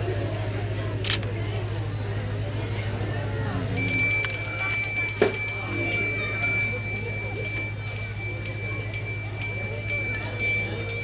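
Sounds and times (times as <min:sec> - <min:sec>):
steady low hum: 0:01.6 - 0:11.0
brass hand bell ringing: 0:03.8 - 0:11.0.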